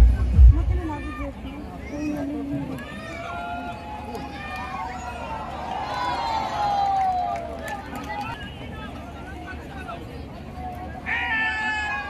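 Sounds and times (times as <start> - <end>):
low crowd rumble: 0.0 - 12.0.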